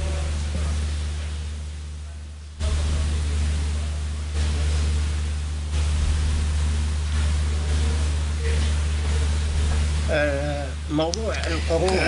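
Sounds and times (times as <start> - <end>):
electrical hum with hiss: 0.0 - 12.0.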